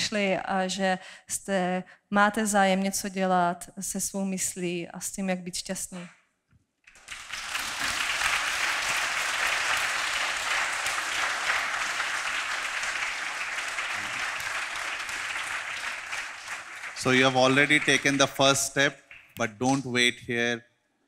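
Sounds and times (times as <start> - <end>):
audience applauding: 6.9 - 19.8.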